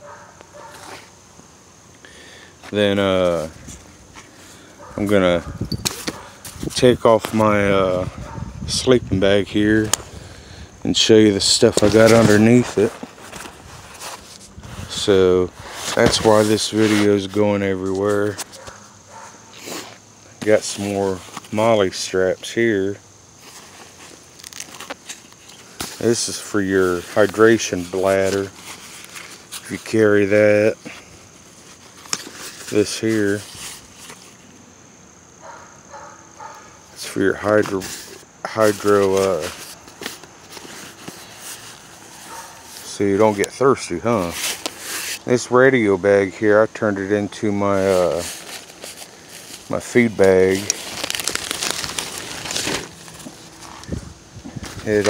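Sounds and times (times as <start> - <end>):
nylon backpack fabric rustling: 11.4 - 22.0, 22.7 - 34.4, 35.9 - 43.4, 47.7 - 55.0.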